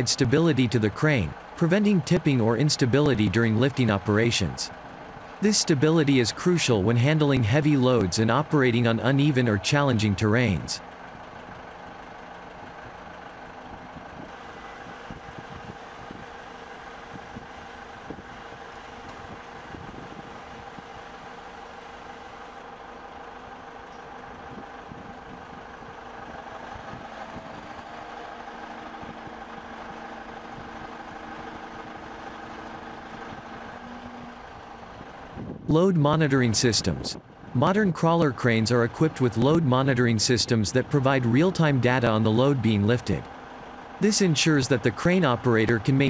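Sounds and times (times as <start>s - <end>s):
heavy engines droning: 0.0s - 46.0s.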